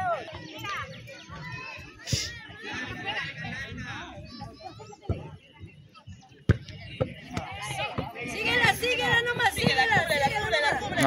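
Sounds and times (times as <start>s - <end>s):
people calling and shouting: 0.0s - 11.0s.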